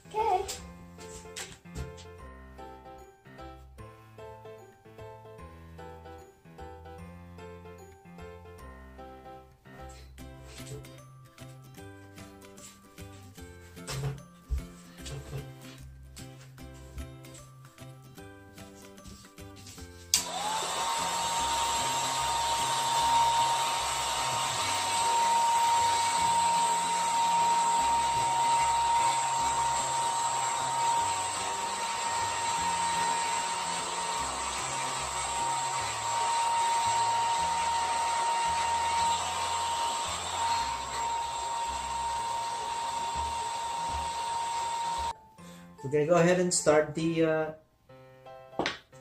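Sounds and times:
hair dryer running: 20.1s - 45.2s.

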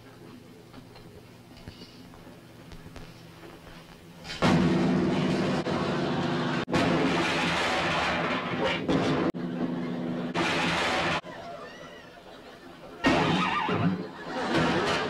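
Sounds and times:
sledgehammer smashing piano: 4.4s - 9.4s, 10.2s - 11.2s, 13.0s - 15.0s.

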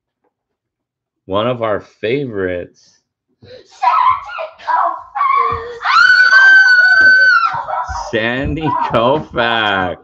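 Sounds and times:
child squealing: 5.2s - 8.9s.

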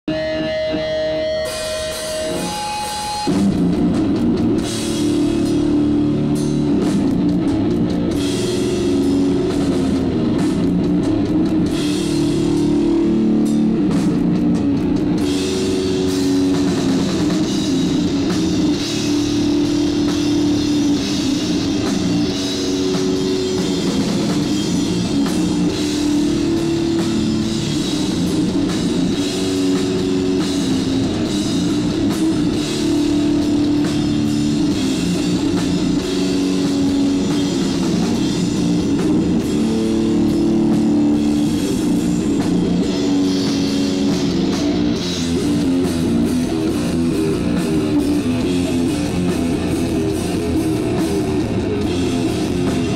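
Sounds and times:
metal band playing live: 0.0s - 52.9s.

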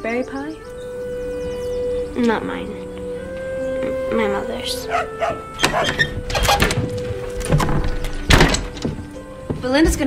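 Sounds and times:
music score with held note: 0.0s - 9.9s
boot footsteps on wooden floor: 4.9s - 10.0s
door thudding: 4.9s - 10.0s.

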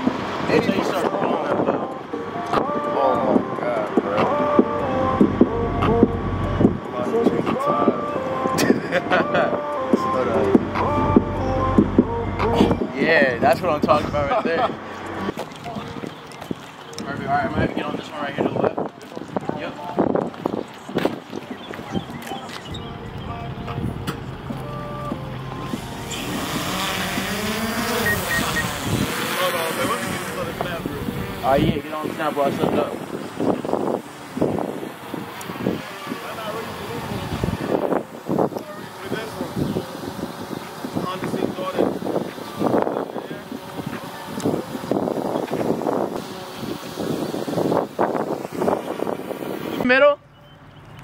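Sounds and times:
indistinct voices: 0.0s - 48.7s
wind buffeting microphone: 0.0s - 49.9s
drone motors whining: 10.1s - 13.9s, 22.0s - 49.8s
rushing propeller noise: 23.0s - 49.9s.

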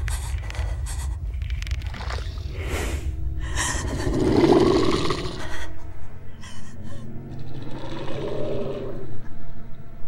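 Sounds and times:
low rumbling drone: 0.0s - 10.0s.

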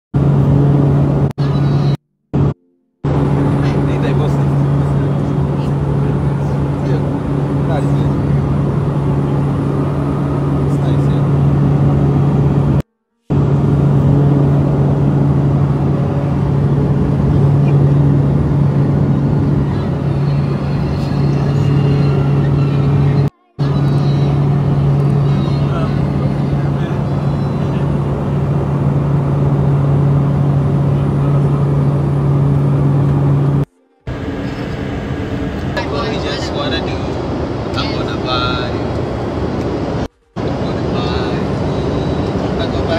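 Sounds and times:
plane engines droning in cabin: 0.2s - 42.9s.

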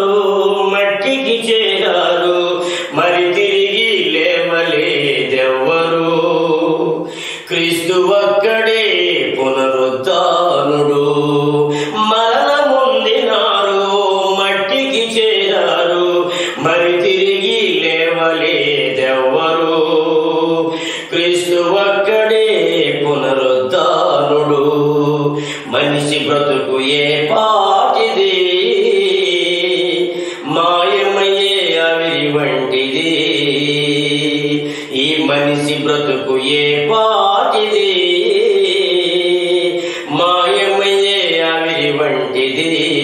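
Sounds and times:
man singing long held notes: 0.0s - 43.0s.

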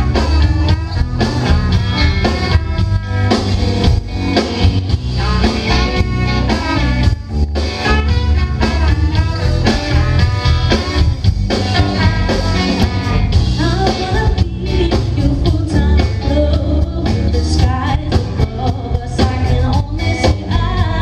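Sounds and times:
live rock band with horns: 0.0s - 21.0s.

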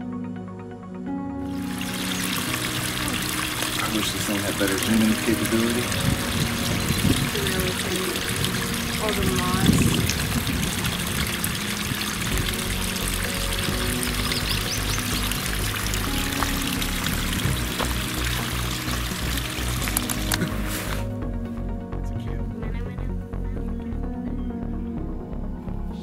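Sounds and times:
background music with steady beat: 0.0s - 26.0s
water trickling over rock: 1.5s - 21.1s.

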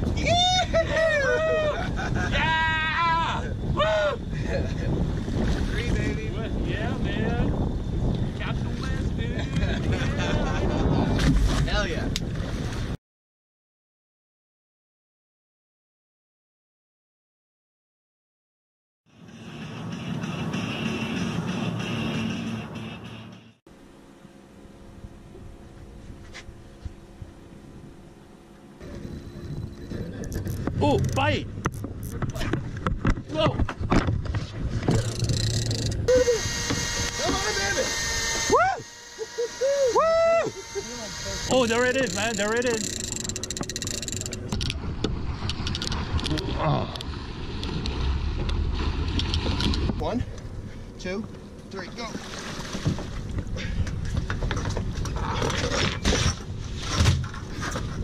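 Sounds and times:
wind on microphone: 0.0s - 13.0s, 28.8s - 37.1s
music playing: 19.2s - 23.6s
fishing reel clicking: 35.0s - 44.6s
water splashing: 51.9s - 53.4s.

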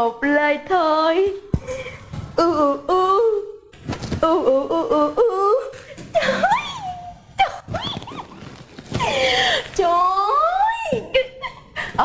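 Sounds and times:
woman crooning wordless sounds: 2.4s - 5.7s.

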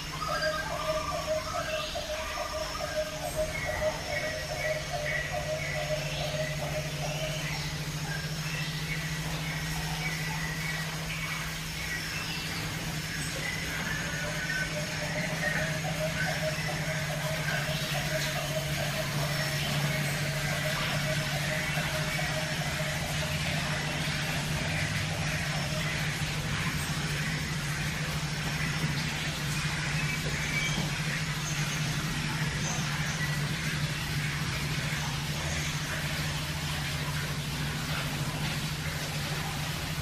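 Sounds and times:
low machine hum: 0.0s - 40.0s.

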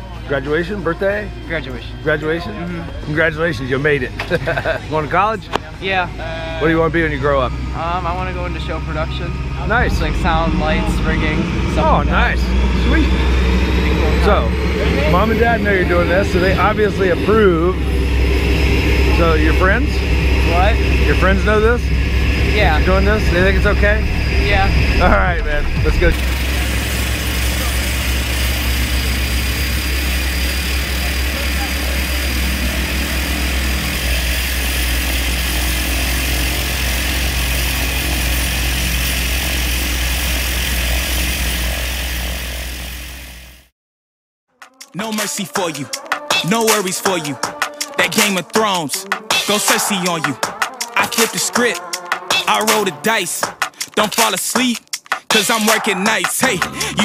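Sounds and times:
man speaking: 0.0s - 13.2s, 13.9s - 18.0s, 19.0s - 21.9s, 22.5s - 26.2s, 55.5s - 57.0s
aircraft engine droning: 0.0s - 43.7s, 55.7s - 57.0s.

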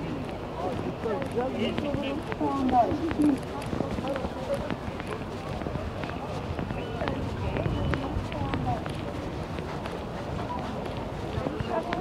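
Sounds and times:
footsteps on pavement: 0.0s - 12.0s
low traffic rumble: 0.0s - 12.0s
passers-by talking: 0.0s - 12.0s.

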